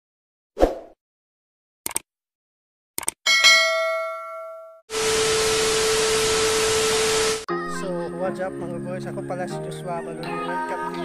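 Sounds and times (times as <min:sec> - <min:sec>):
bell chime: 0:03.3 - 0:04.8
tv static hiss: 0:04.9 - 0:07.5.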